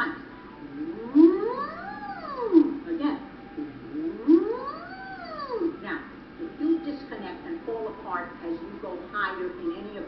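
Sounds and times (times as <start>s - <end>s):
woman humming vocal siren: 0.5s - 5.8s.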